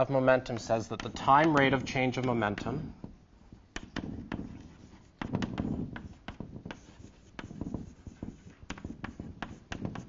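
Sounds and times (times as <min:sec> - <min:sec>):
chalk tapping and scratching: 0:00.4 - 0:10.0.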